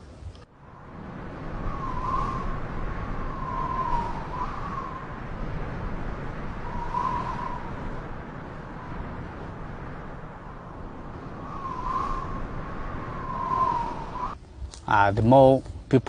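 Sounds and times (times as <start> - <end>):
wind: 0.0 - 16.0
faint wavering whistle tone: 0.7 - 14.4.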